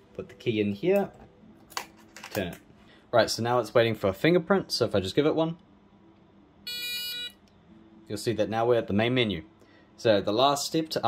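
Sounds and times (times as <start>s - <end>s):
electronic buzzer beep: 6.6s - 7.4s.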